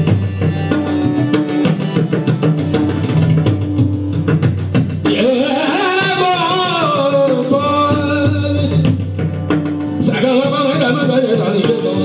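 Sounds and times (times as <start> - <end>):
hand drum strokes: 0.0 - 12.0
harmonium melody: 0.0 - 12.0.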